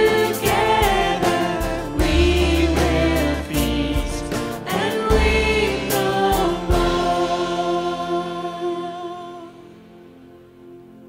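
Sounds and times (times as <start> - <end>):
man and woman singing: 0.0 - 9.7
electric keyboard with bass: 0.0 - 11.0.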